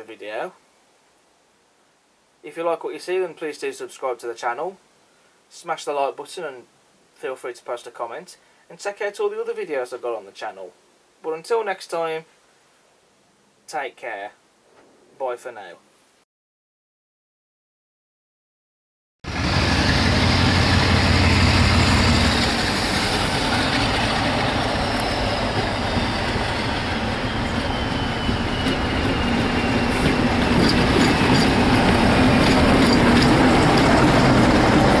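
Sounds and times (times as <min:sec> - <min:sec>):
diesel locomotive passing: 0:19.3 - 0:35.0
thin falling whistle: 0:24.7 - 0:31.4.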